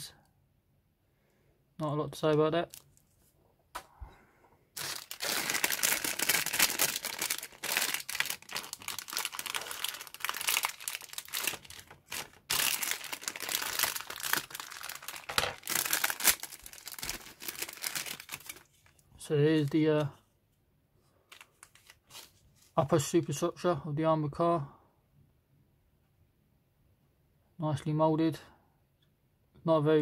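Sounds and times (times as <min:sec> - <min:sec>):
plastic bag crinkling: 0:02.6 - 0:03.1, 0:04.8 - 0:19.0.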